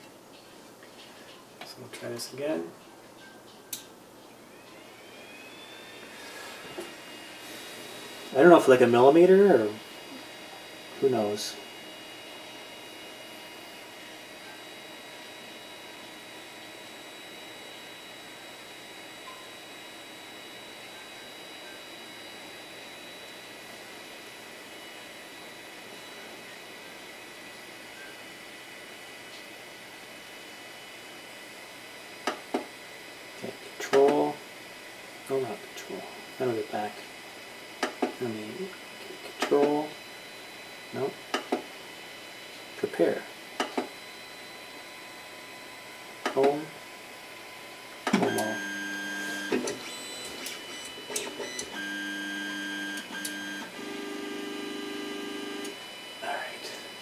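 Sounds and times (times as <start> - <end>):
stepper motors whining: 4.5 - 10.2, 48.2 - 55.9.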